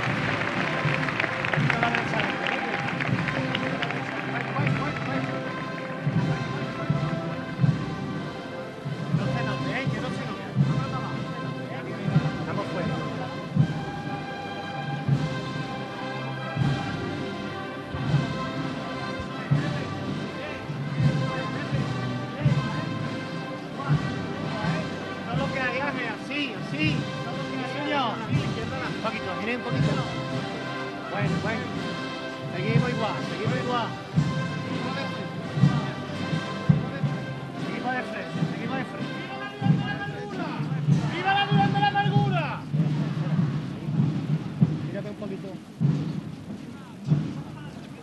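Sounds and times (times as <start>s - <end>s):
sustained brass chords: 0.0s - 42.2s.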